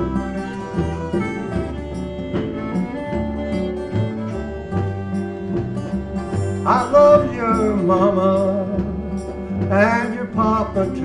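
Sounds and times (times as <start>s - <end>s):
acoustic guitars strumming: 0.0s - 11.0s
fiddle: 0.0s - 11.0s
low bass notes: 0.0s - 11.0s.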